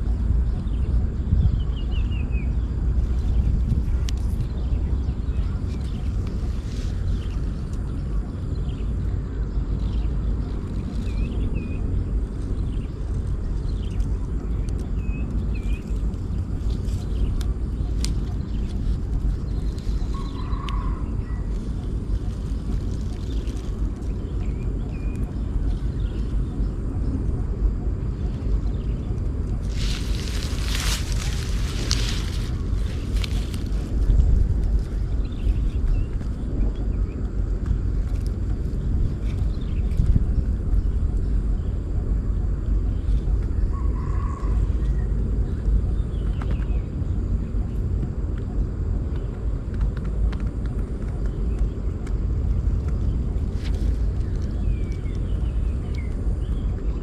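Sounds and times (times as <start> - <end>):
wind rumbling on microphone: 0.0 - 57.0
crackling rustle: 2.9 - 8.5, 9.6 - 26.5, 28.2 - 41.0, 49.1 - 57.0.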